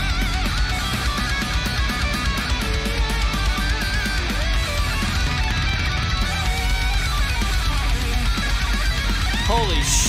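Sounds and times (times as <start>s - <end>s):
heavy metal song: 0.0s - 10.0s.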